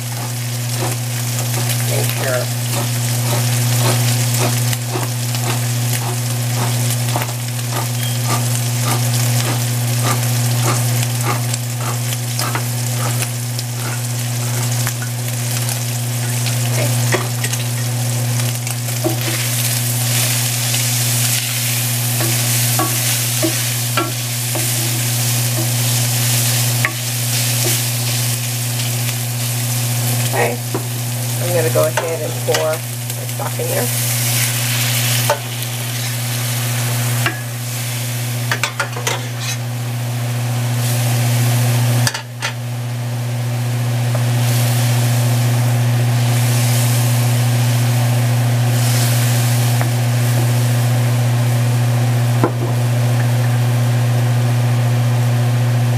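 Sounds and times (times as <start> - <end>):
wooden spoon scraping a pan: 0.0 - 17.6, 19.0 - 28.4, 31.4 - 37.5, 38.6 - 39.6
meat sizzling in a pan: 0.0 - 54.1
steady low hum: 0.0 - 55.1.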